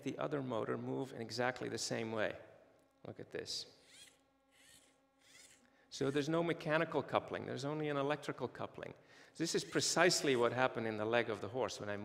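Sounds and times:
faint whirring of toy electric motors: 0:03.8 - 0:06.2.

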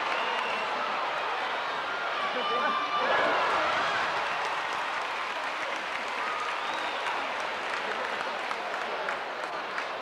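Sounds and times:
crowd applauding: 0:00.0 - 0:01.5, 0:02.4 - 0:10.0
crowd voices: 0:00.0 - 0:10.0.

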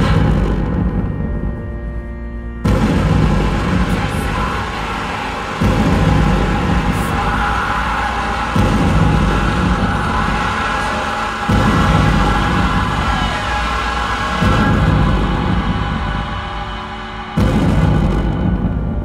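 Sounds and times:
dark electronic noise music: 0:00.0 - 0:19.0
deep booming low layer: 0:00.0 - 0:19.0.

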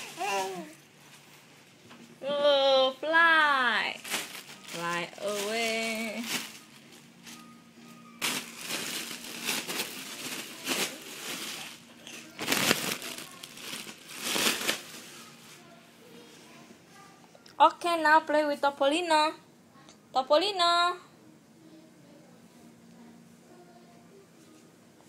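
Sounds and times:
baby squealing and babbling: 0:00.0 - 0:00.8
foil balloon crinkling: 0:00.0 - 0:01.8, 0:03.4 - 0:15.8.

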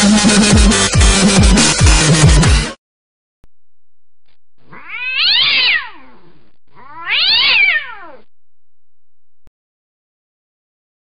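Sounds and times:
cat meowing: 0:04.7 - 0:08.3.

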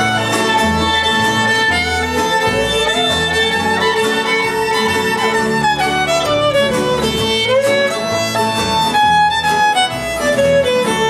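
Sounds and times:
fiddle with sliding notes: 0:00.0 - 0:11.0
guitar: 0:00.0 - 0:11.0
upright bass: 0:00.0 - 0:11.0.

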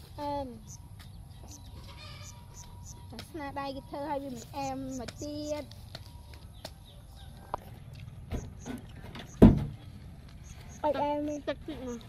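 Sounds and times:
girl speaking: 0:00.0 - 0:00.7, 0:03.1 - 0:05.7, 0:10.8 - 0:12.0
loud deep thump: 0:08.3 - 0:09.8.

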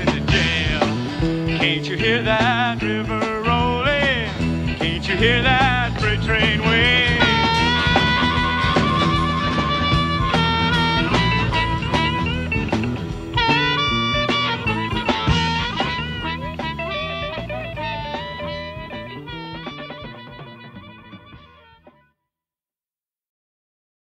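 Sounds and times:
country-rock band playing: 0:00.0 - 0:22.0.

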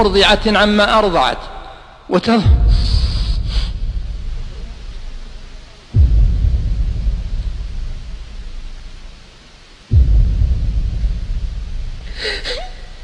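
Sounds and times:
thunder rumbling: 0:00.0 - 0:13.0.

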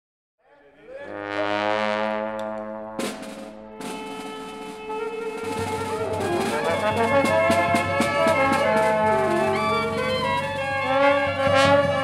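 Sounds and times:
brass band holding a chord: 0:00.9 - 0:12.0
sharp percussion hits: 0:01.4 - 0:12.0.

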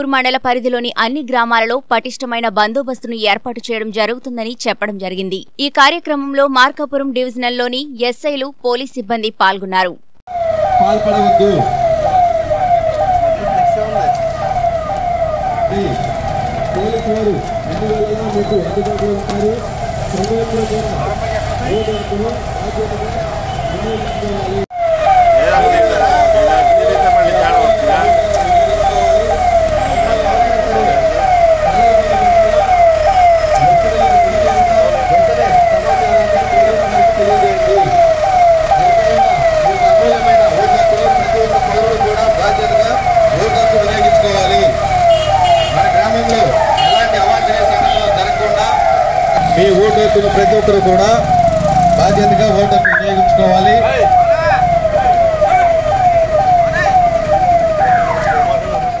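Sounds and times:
police siren fast falling sweeps: 0:10.3 - 0:59.0.

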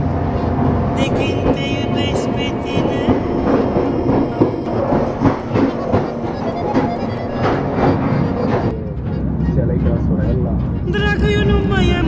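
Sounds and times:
train rumble: 0:00.0 - 0:12.0
train wheels clacking on rails: 0:00.0 - 0:12.0.

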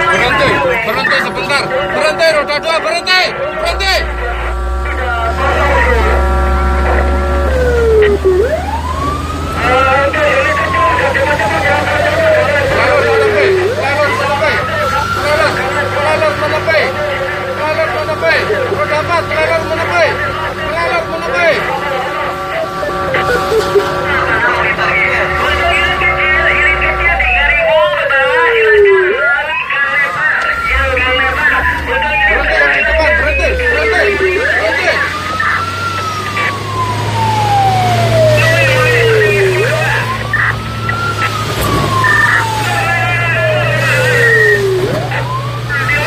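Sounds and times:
emergency vehicle siren: 0:00.0 - 0:46.0
low engine rumble: 0:00.0 - 0:46.0.

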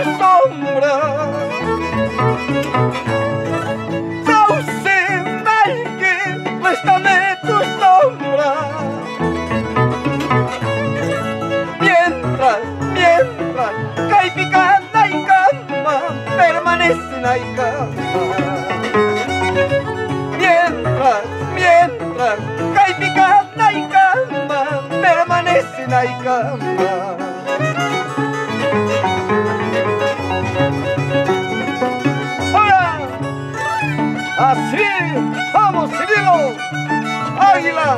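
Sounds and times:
harp plucked bass and chords: 0:00.0 - 0:37.9
violin melody with vibrato: 0:00.0 - 0:37.9.

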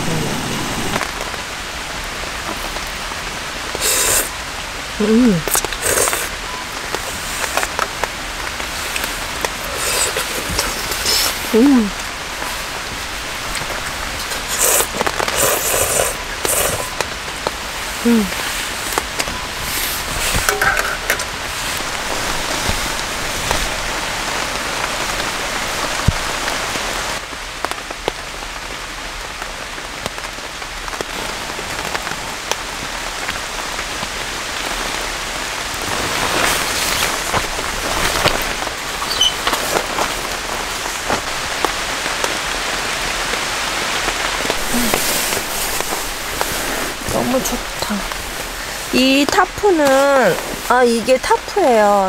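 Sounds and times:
rain on a tarp: 0:00.0 - 0:52.0.

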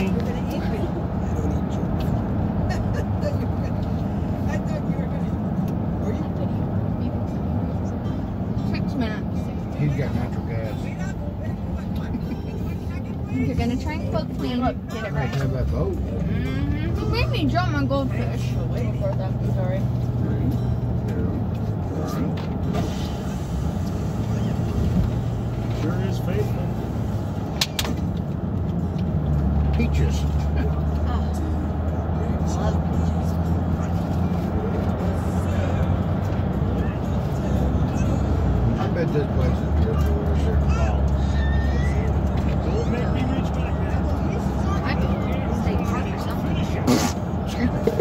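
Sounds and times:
car road and engine rumble: 0:00.0 - 0:48.0
faint voices: 0:29.4 - 0:48.0.

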